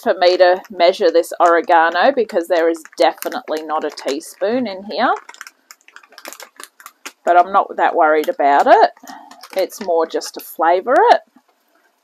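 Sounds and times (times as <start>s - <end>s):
person speaking: 0.0s - 5.4s, 7.1s - 11.3s
kitchen items clicking and tapping: 0.0s - 11.5s.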